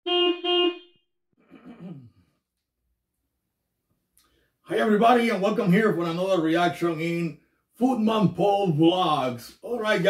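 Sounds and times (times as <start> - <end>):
horn honks: 0.0 - 1.1.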